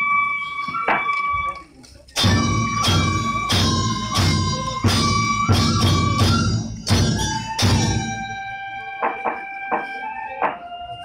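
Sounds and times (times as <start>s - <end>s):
flute holding high note: 0.0s - 11.0s
sharp percussion strikes: 2.2s - 10.6s.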